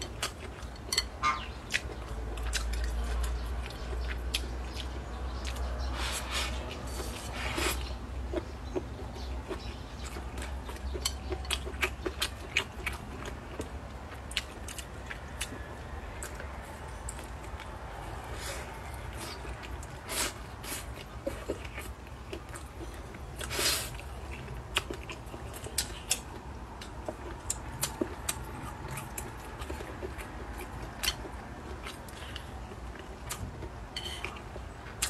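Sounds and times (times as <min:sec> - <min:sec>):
wet chewing and smacking: 0:00.0 - 0:35.0.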